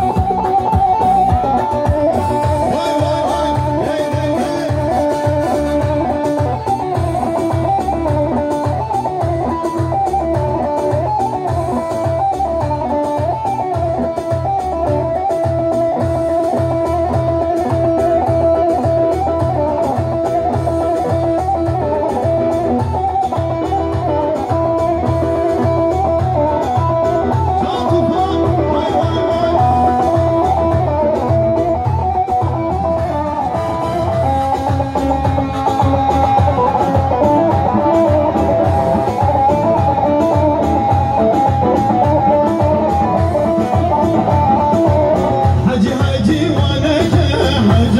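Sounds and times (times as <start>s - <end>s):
low drum beat: 0.0s - 47.9s
saz melody: 0.0s - 47.9s.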